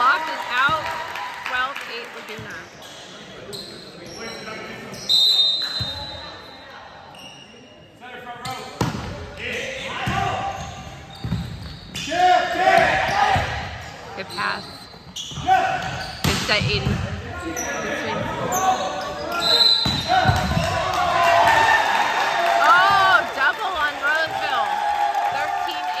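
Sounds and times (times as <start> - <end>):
players shouting: 12.0 - 13.8, 17.5 - 26.0.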